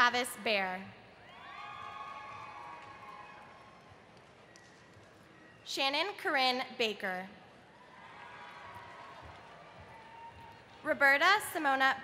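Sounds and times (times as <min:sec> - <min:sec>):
faint audience cheering: 0:01.2 - 0:04.1.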